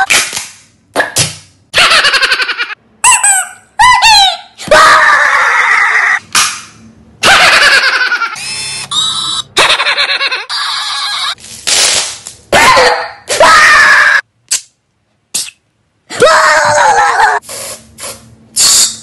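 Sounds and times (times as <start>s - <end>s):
high falling squeals: 10.5s - 11.4s.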